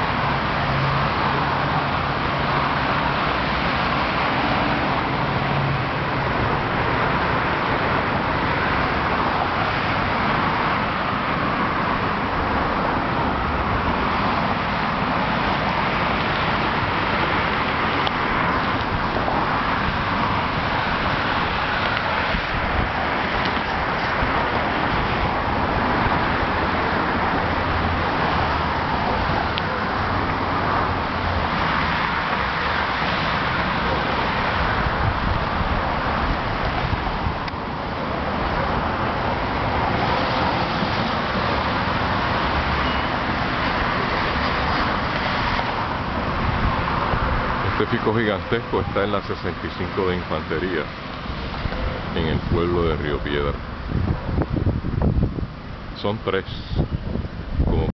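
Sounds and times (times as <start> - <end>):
passing cars: 0.0 - 57.9.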